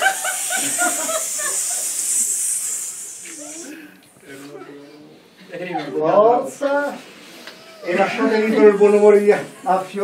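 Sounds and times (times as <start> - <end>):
people hissing: 0.0 - 4.6.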